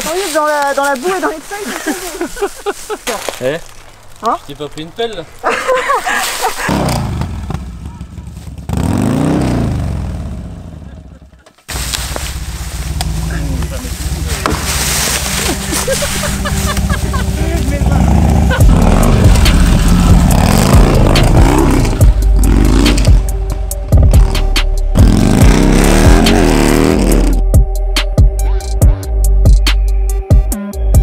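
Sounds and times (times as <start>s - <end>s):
voices: 0.0s - 6.9s, 12.3s - 23.1s
motorcycle revving: 6.6s - 27.7s
music with heavy low beat: 13.0s - 31.0s.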